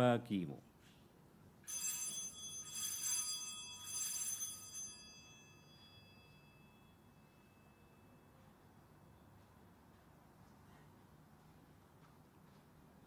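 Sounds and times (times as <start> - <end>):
altar bells ringing: 1.7 - 8.4.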